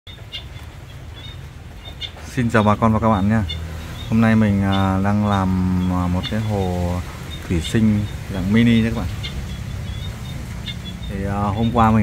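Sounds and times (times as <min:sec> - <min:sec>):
high bird chirps: 0:00.1 - 0:12.0
steady low hum: 0:02.6 - 0:12.0.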